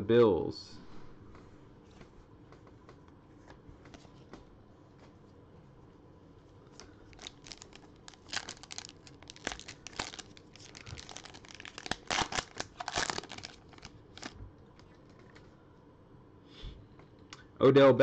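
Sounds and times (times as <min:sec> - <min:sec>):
plastic wrapper crinkling and tearing: 0:06.7 - 0:15.4.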